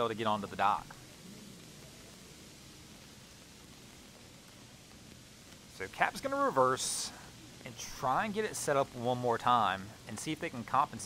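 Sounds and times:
faint rain hiss: 0:00.0 - 0:11.0.

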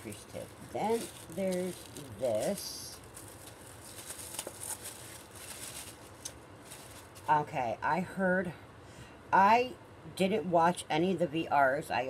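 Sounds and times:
plastic bag rustling and clicking: 0:00.6 - 0:07.4.

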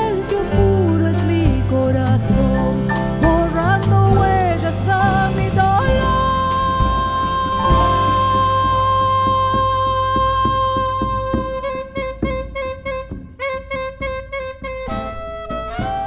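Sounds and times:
folk band playing live: 0:00.0 - 0:16.0.

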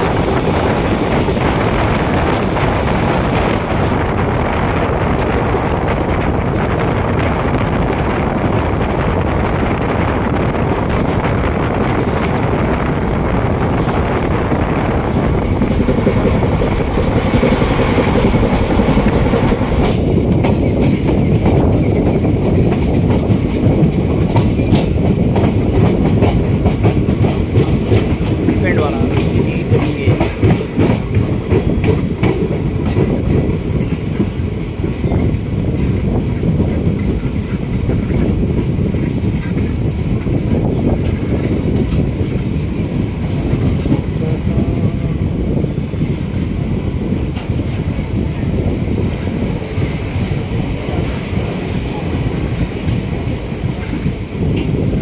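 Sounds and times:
train rail rumble: 0:00.0 - 0:55.0
train wheels clicking over rail joints: 0:00.0 - 0:55.0
wind rushing: 0:00.0 - 0:55.0.

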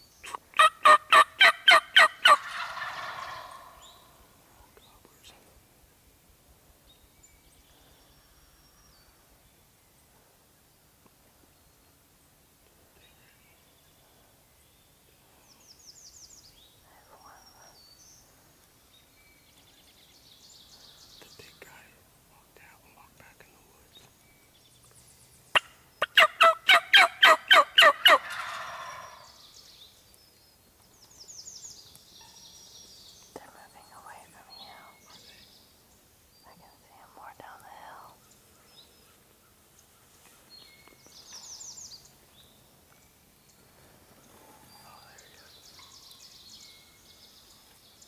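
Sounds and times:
turkey gobbling: 0:00.6 - 0:03.8, 0:25.6 - 0:29.2
faint songbird chirps: 0:02.5 - 0:48.0.

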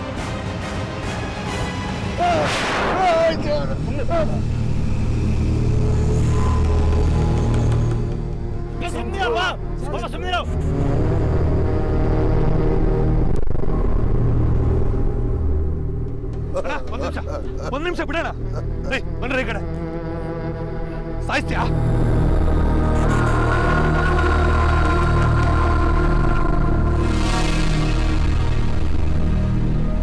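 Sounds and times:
background music: 0:00.0 - 0:30.0
dramatic boom: 0:02.2 - 0:07.5
sharp musical hit: 0:02.3 - 0:06.5
low sustained drone: 0:03.1 - 0:08.8, 0:10.5 - 0:30.0
man crying out: 0:16.5 - 0:19.2
wavering wailing voice: 0:21.6 - 0:26.9.

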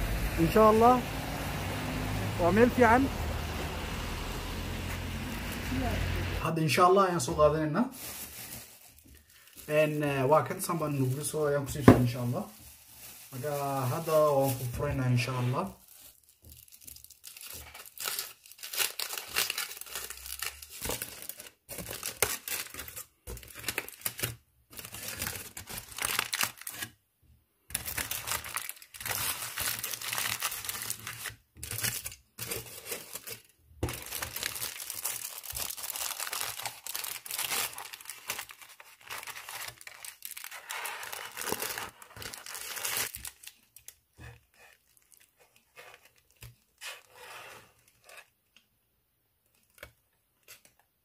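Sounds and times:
aluminium foil crinkling: 0:07.8 - 0:27.0, 0:27.7 - 0:48.3.

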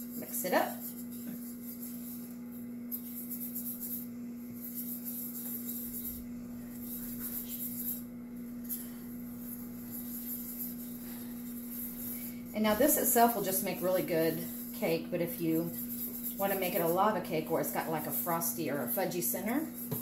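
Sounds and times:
ice cream maker humming: 0:00.0 - 0:20.0
whisk scraping batter in pan: 0:00.0 - 0:20.0.

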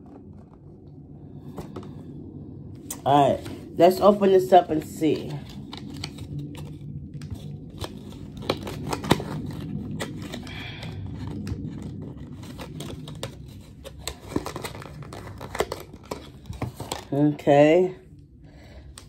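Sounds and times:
paper rustling and tearing: 0:05.1 - 0:17.2.

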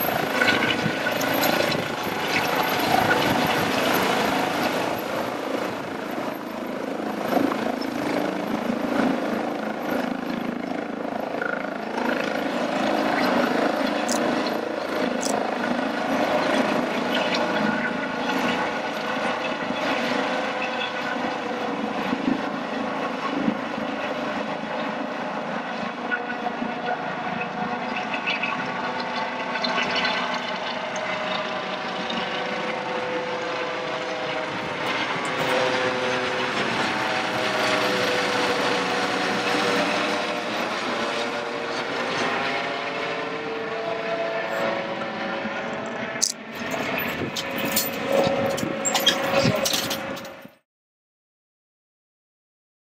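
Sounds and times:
helicopter rotor and turbine: 0:00.0 - 0:50.6.

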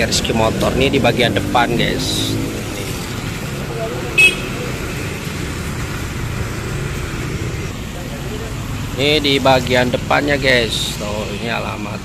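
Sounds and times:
traffic on a wet road: 0:00.0 - 0:12.0
high horn toot: 0:04.2 - 0:04.6.

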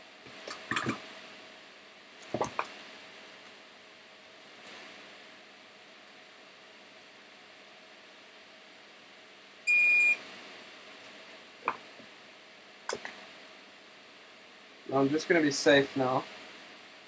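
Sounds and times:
faint room hiss: 0:00.0 - 0:17.0.

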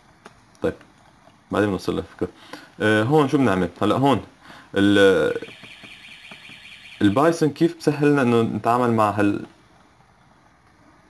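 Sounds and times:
man speaking: 0:01.5 - 0:05.6, 0:07.0 - 0:09.5.

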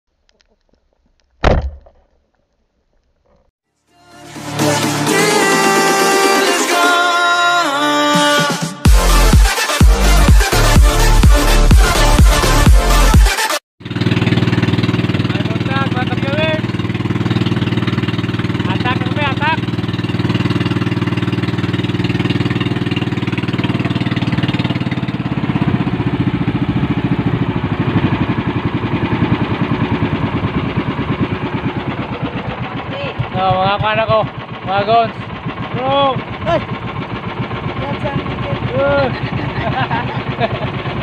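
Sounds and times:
boat engine running: 0:13.8 - 0:41.0.

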